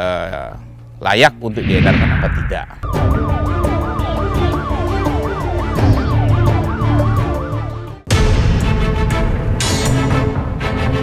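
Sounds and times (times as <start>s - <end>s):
siren wail: 1.9s - 8.0s.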